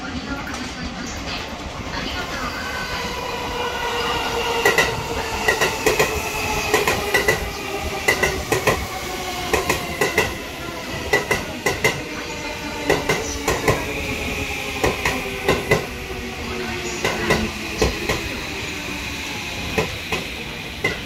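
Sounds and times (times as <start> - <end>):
electric train whine: 0.0 - 21.0
train wheels clacking: 4.5 - 10.4, 11.0 - 12.2, 16.9 - 18.4, 19.4 - 21.0.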